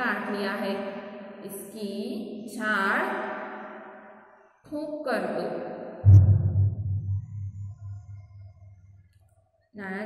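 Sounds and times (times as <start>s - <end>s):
deep ringing tone wavering: 6.1s - 9.1s.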